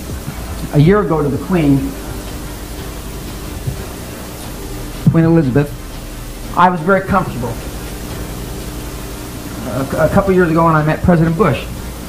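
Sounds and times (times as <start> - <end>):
faint steady hum: 0.0 - 12.0
recording hiss: 0.0 - 12.0.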